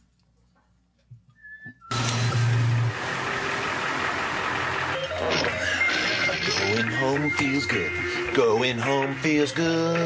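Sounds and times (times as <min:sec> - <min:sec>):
high whistle-like tone: 0:01.4 - 0:02.4
car interior engine and road noise: 0:01.9 - 0:08.4
low hum: 0:01.9 - 0:08.9.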